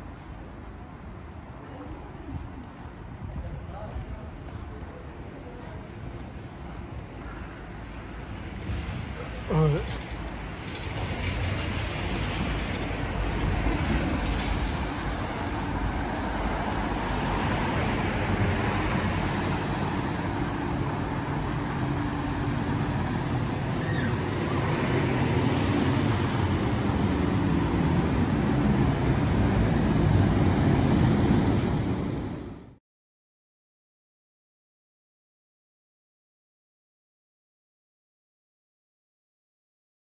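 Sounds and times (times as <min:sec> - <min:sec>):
road traffic noise: 0:00.0 - 0:32.8.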